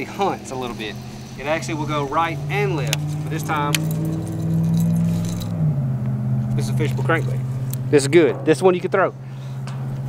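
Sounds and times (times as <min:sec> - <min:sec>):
low engine hum: 0:00.0 - 0:10.0.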